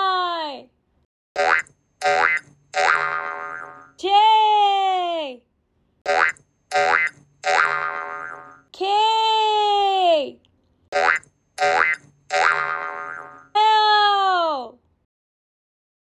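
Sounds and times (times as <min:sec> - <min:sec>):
cartoon boings rising in pitch: 0:01.4 - 0:03.9, 0:06.1 - 0:08.6, 0:11.0 - 0:13.5.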